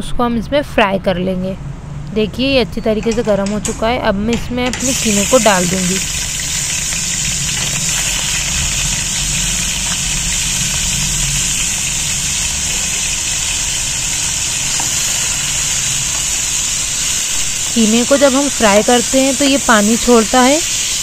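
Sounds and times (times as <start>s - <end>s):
meat sizzling in hot oil: 4.8s - 21.0s.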